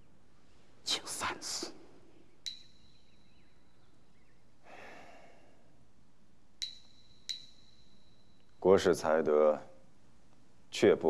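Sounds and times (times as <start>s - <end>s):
faint bird chirps: 0.0s - 5.8s, 6.5s - 8.7s
sharp ringing clink: 2.4s - 3.7s, 6.6s - 8.6s.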